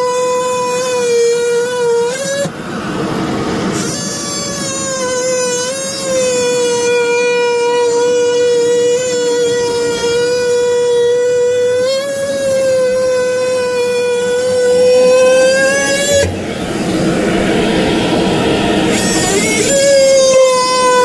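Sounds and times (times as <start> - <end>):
power saw whining: 0.0 - 21.0.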